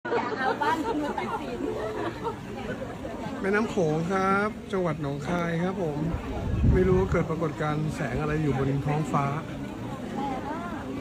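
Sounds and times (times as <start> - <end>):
people talking and chattering: 0.0 - 11.0.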